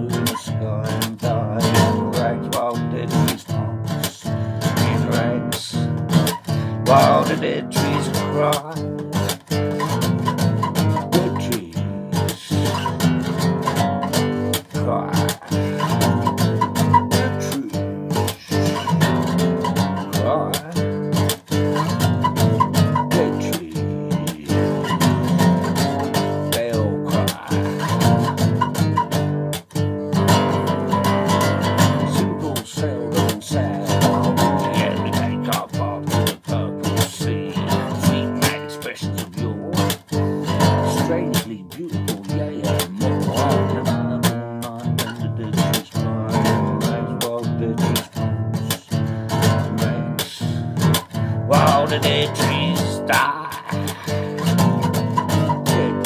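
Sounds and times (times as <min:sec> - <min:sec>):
acoustic bass guitar strummed: 0:00.0 - 0:56.0.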